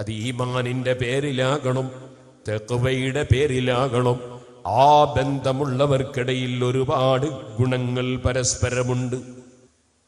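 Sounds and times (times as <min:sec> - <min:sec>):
man preaching: 0:00.0 - 0:09.4.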